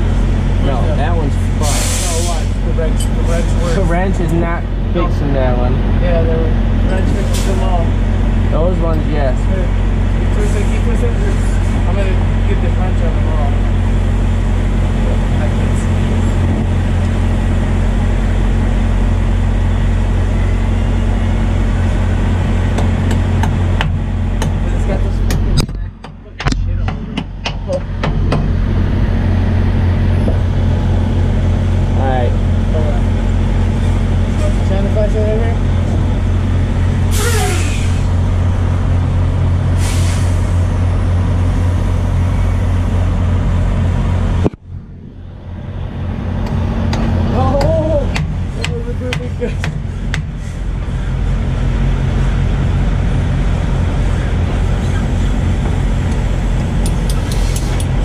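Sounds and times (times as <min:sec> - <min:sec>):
diesel truck engine idling: 0:00.0 - 0:58.0
air hissing: 0:01.3 - 0:03.7, 0:37.0 - 0:38.2, 0:39.7 - 0:41.0, 0:56.8 - 0:58.0.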